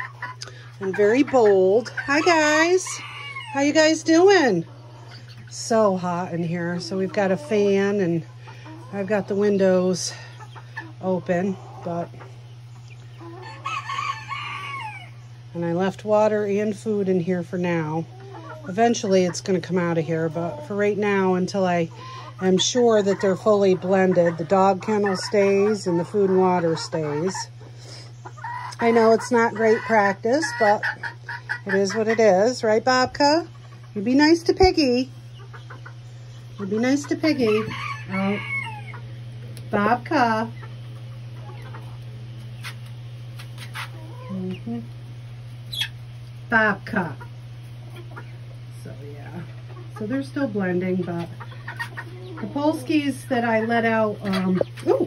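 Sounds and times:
chicks peeping and clucking: 0.0 - 55.0
electric fan humming: 0.0 - 55.0
rooster crowing: 13.4 - 15.2, 37.4 - 39.0.

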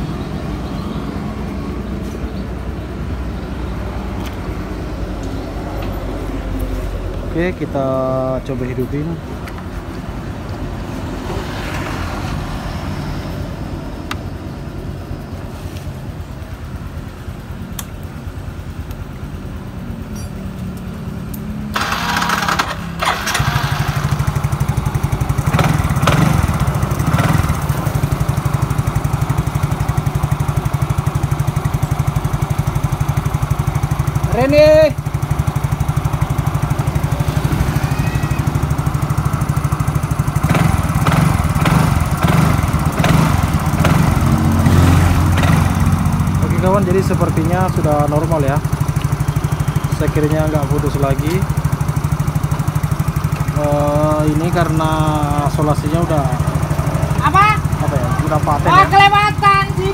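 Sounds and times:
scooter engine idling: 16.1 - 59.9.

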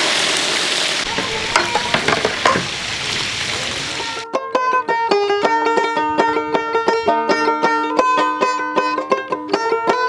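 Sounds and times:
meat sizzling in hot oil: 0.0 - 4.2.

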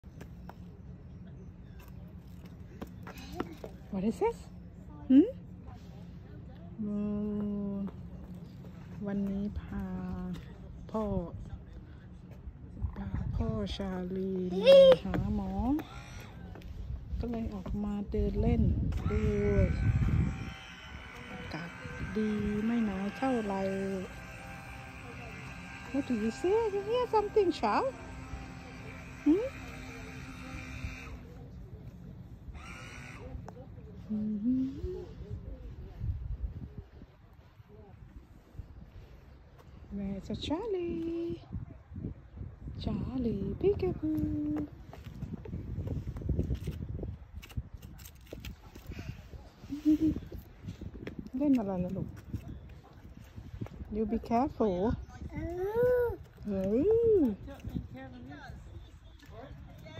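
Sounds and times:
low rumble: 15.0 - 32.6
buzzing hum: 18.0 - 35.2
toddler vocal sound: 55.3 - 56.3.

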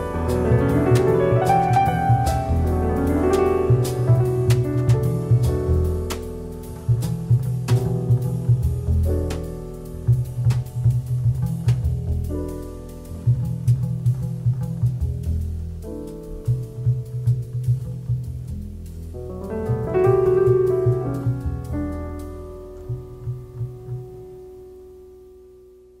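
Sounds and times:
light drum hits: 0.0 - 18.6
plucked jazz bass line: 0.0 - 25.9.

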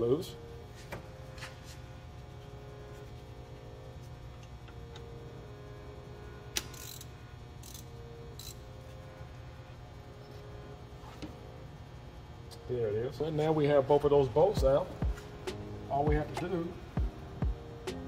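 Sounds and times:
steady low hum: 0.0 - 18.0
sharp ratchet click: 6.6 - 8.6.

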